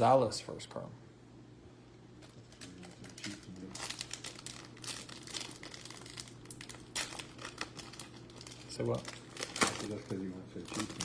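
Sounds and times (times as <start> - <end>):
foil wrapper crinkling: 2.2 - 11.0.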